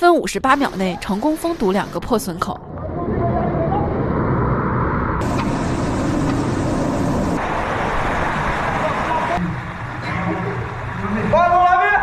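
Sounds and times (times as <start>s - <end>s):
water gushing and spraying: 5.2s - 11.4s.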